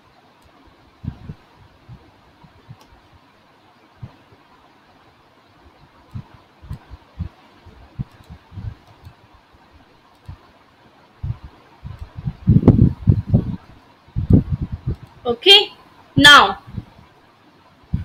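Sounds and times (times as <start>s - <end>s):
soft low thumps: 6.1s - 8.9s, 11.2s - 15.2s.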